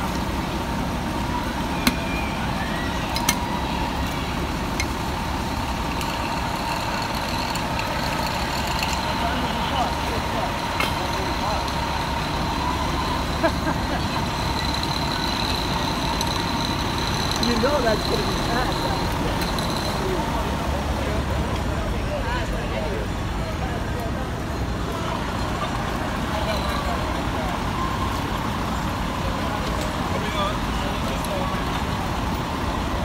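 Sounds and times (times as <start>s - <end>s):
diesel engine running: 0.0s - 33.0s.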